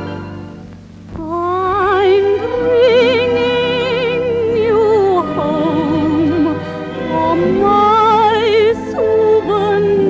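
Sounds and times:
orchestral accompaniment: 0:00.0 - 0:10.0
woman singing: 0:01.2 - 0:10.0.

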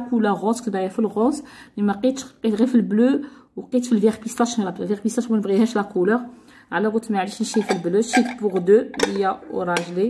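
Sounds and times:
people talking: 0:00.0 - 0:10.0
dishes clinking: 0:07.5 - 0:10.0.

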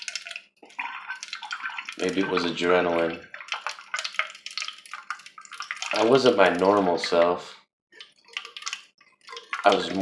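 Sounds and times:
water trickling into can: 0:00.0 - 0:10.0.

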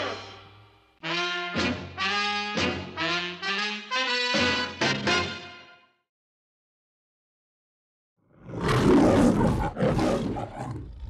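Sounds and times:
lion roaring: 0:08.3 - 0:11.0.

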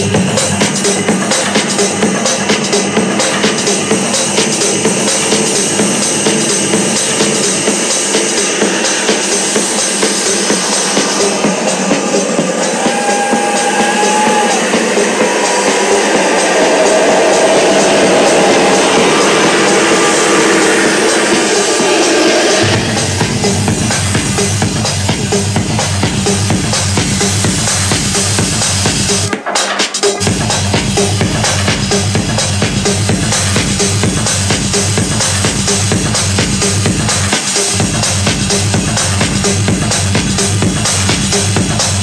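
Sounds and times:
techno music over sound system: 0:00.0 - 0:42.0.

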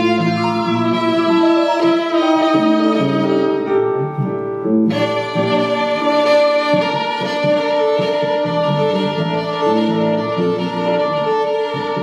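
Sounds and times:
violin playing: 0:00.0 - 0:12.0.

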